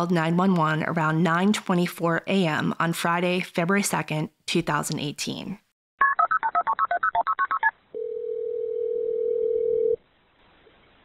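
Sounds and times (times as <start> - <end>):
telephone ringing tone: 7.9 - 10.0.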